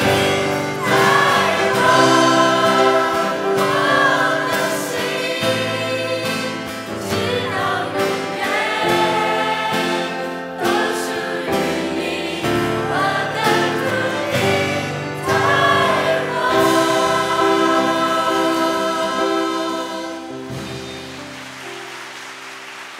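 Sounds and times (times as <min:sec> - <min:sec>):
mixed choir singing in harmony: 0:00.0 - 0:21.0.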